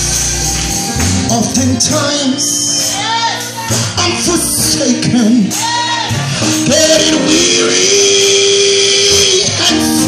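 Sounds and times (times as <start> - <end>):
band with guitar: 0.0 - 10.0.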